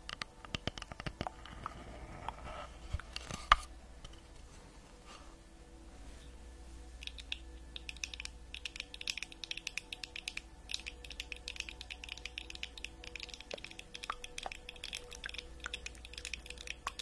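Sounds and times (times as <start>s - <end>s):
fingernails clicking and tapping: 7.0s - 17.0s.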